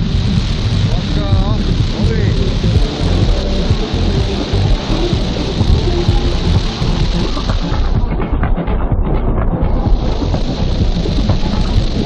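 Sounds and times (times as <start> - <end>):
rushing whitewater: 0.0 - 8.0
pop music: 0.0 - 12.0.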